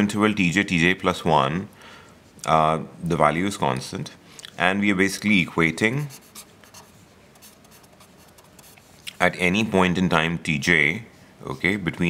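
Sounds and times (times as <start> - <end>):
pen writing on paper: 6.0 - 8.8.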